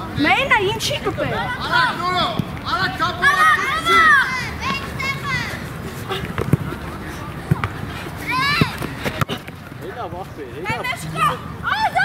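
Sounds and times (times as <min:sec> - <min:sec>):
children shouting: 0:03.2 - 0:05.6.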